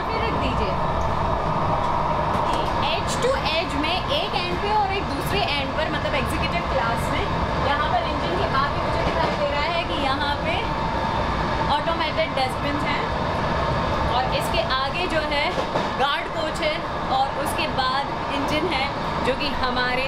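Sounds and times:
people talking: 0.0 - 0.8, 2.5 - 10.7, 11.7 - 13.1, 14.1 - 20.0
rumble of moving train: 0.0 - 20.0.

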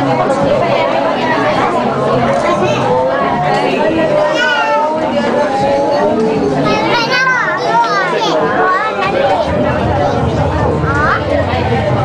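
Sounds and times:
adult chatter: 0.0 - 12.0
children's voices: 0.0 - 12.0.

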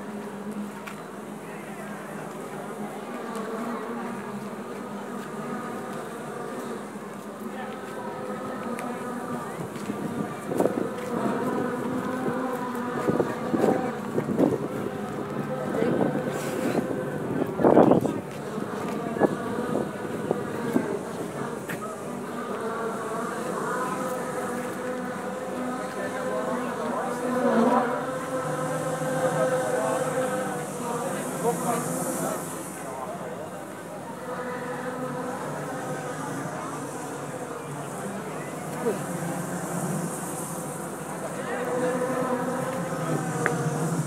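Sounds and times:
motor buzzing drone: 34.2 - 44.0.

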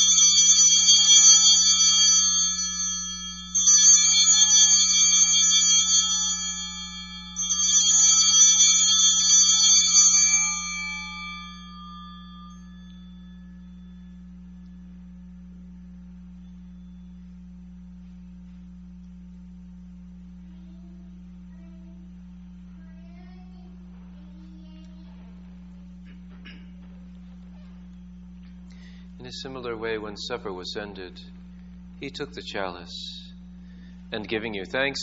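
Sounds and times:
altar bells jangling: 0.0 - 14.2
steady low hum: 0.0 - 35.0.

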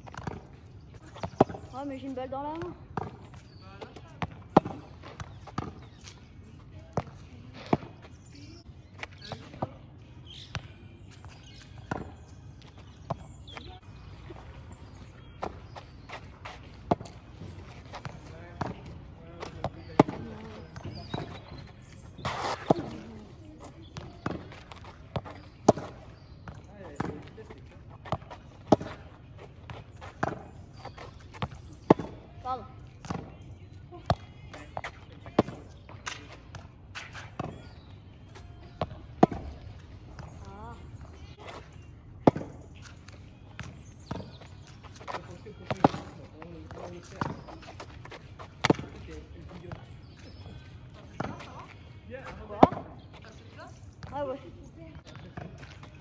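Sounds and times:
tennis ball bouncing on asphalt: 0.0 - 56.0
tennis ball struck by racket: 19.4 - 21.6, 22.2 - 23.2, 23.9 - 26.0, 28.1 - 29.0, 30.2 - 32.2, 38.7 - 39.6, 42.2 - 42.9, 45.0 - 47.8, 48.5 - 49.1, 52.5 - 53.0.

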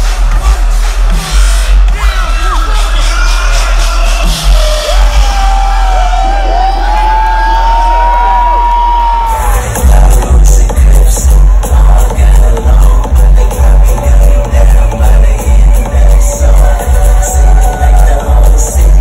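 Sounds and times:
electronic dance music: 0.0 - 19.0
crowd cheering and whooping: 3.8 - 9.8, 16.6 - 19.0.

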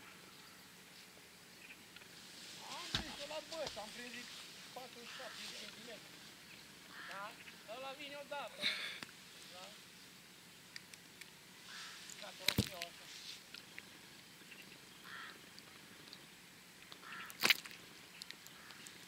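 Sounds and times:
faint calls: 0.0 - 19.0
quiet outdoor ambience: 0.0 - 19.0.

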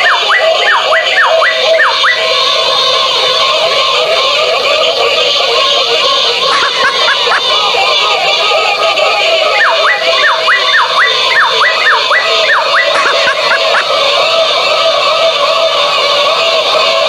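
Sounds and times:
toy electronic voice: 0.0 - 2.7, 3.4 - 14.2
swooping up-and-down sounds: 6.5 - 7.4, 9.6 - 13.9.

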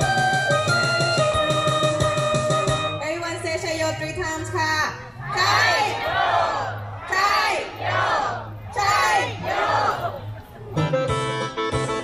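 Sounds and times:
crowd shouting a cheer: 5.2 - 10.2.

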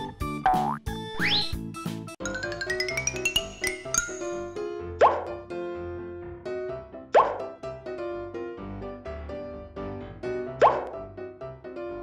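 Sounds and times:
light children's music: 0.0 - 12.0
cartoon plop sound effect: 5.0 - 5.4, 7.2 - 7.5, 10.6 - 11.0.

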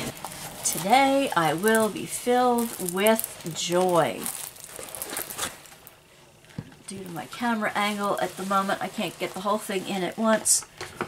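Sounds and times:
plastic film crinkling: 0.0 - 10.8.

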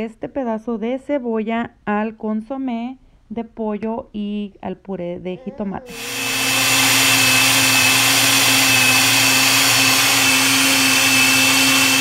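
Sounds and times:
blender motor whining: 5.9 - 12.0.

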